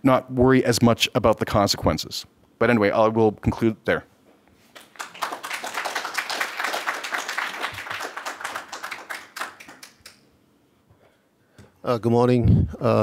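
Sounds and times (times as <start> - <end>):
audience applauding: 4.8 - 10.2.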